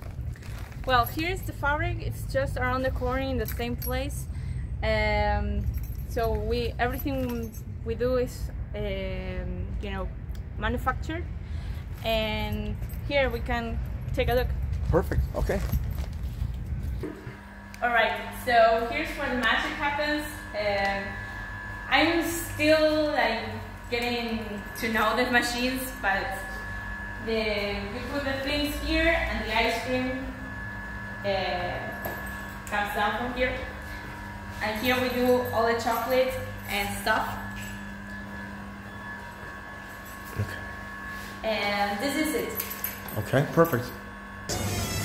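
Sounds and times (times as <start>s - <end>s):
steady machine hum: 0.0s - 45.0s
woman speaking: 0.9s - 11.3s, 12.0s - 14.5s, 17.8s - 21.1s, 32.7s - 33.7s, 34.6s - 37.4s, 41.4s - 42.6s.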